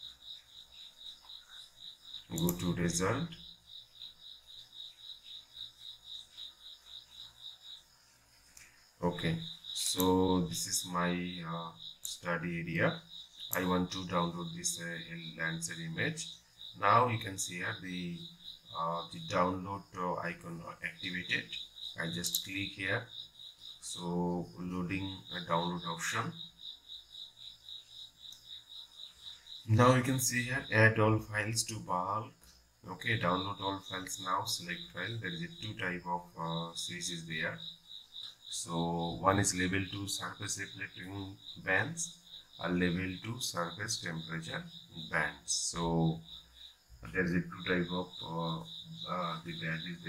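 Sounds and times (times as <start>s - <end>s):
faint insect chirping: 0.0s - 50.0s.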